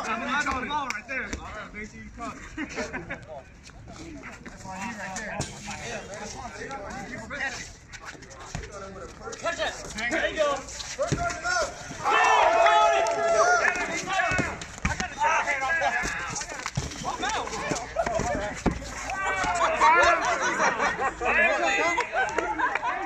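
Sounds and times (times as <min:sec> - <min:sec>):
dodgeballs thumping pavement: 0:08.5 - 0:20.7
people shouting excitedly: 0:11.4 - 0:16.2, 0:19.0 - 0:20.5.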